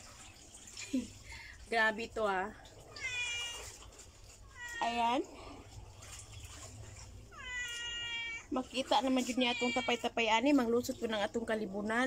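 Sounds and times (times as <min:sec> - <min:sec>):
high-pitched meow-like call: 0:03.0 - 0:03.7, 0:07.4 - 0:08.5.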